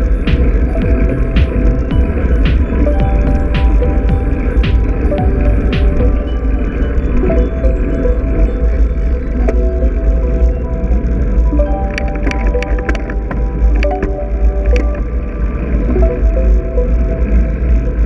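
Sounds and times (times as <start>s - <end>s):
melody of short held notes: 0.0s - 18.0s
steady low rumble: 0.0s - 18.0s.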